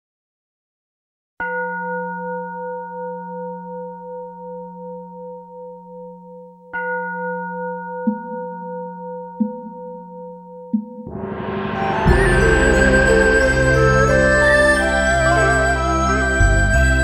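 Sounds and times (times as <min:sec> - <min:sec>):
bowl bell ringing: 0:01.4 - 0:17.0.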